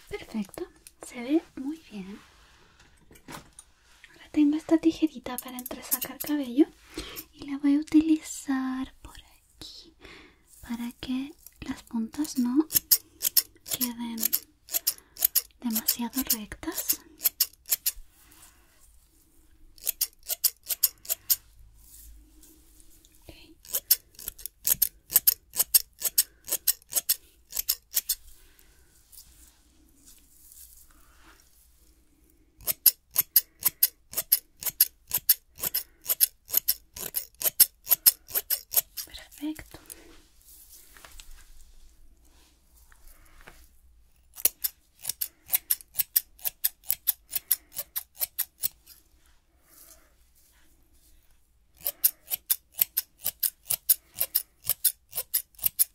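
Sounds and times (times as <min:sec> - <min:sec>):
scissors snipping hair: 0:05.2 - 0:06.5, 0:11.4 - 0:18.0, 0:19.8 - 0:21.4, 0:23.6 - 0:28.2, 0:32.6 - 0:40.0, 0:44.2 - 0:49.0, 0:51.8 - 0:55.9.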